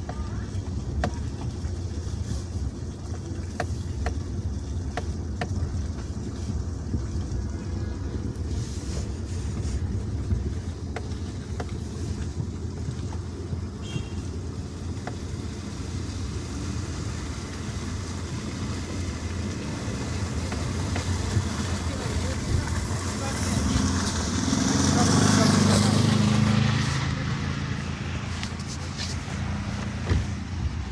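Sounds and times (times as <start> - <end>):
car engine and tyres on snow: 0.0 - 30.9
quad bike passing: 19.4 - 30.9.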